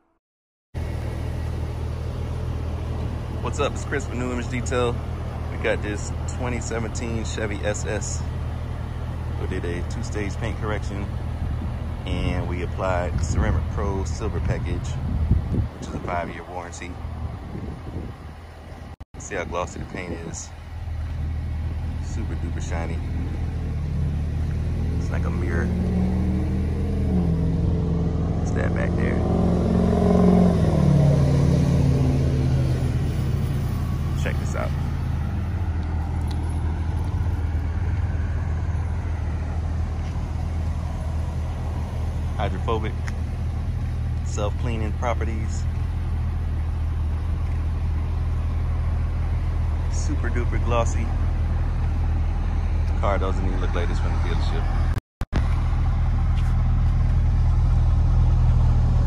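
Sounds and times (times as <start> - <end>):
car engine idling: 0.8 - 59.0.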